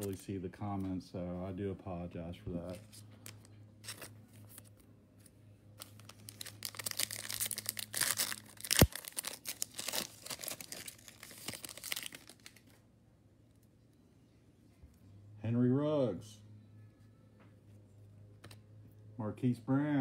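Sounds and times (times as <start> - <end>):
wrapper crinkling: 2.7 - 4.8, 5.8 - 12.8
foil pack tearing: 5.8 - 12.6.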